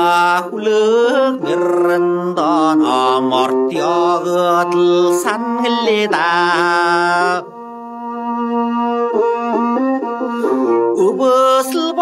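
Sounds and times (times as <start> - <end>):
man singing folk song: 0.0 - 7.7, 10.3 - 12.0
instrumental accompaniment: 0.0 - 12.0.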